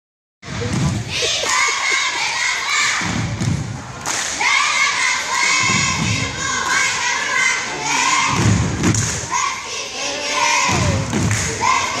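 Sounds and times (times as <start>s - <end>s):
crowd noise: 0.4s - 12.0s
cheerleaders shouting a cheer: 0.5s - 12.0s.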